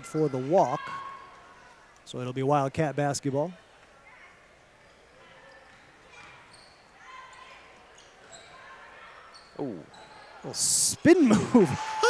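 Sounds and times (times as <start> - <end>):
low crowd murmur: 3.5 - 12.0
sneaker squeaks: 4.8 - 10.6.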